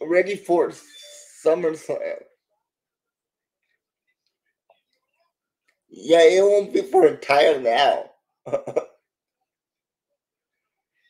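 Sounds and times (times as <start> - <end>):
man laughing: 8.5 - 9.0.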